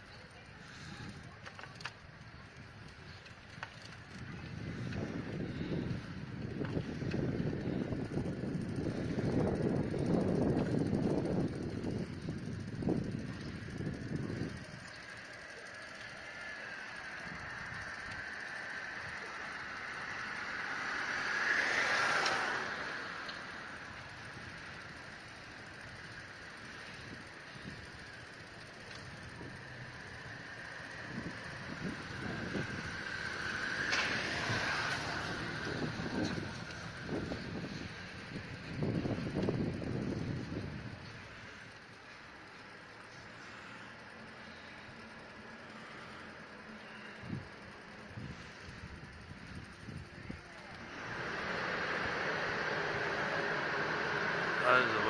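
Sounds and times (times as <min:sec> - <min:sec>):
street noise: 0:00.0 - 0:55.0
wind rumbling on microphone: 0:00.6 - 0:15.3, 0:22.4 - 0:41.7, 0:47.1 - 0:55.0
steady high whine: 0:04.2 - 0:55.0.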